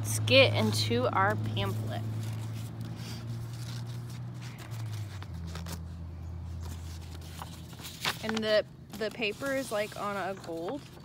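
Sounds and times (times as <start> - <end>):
paper pamphlet rustling: 1.3 - 11.0.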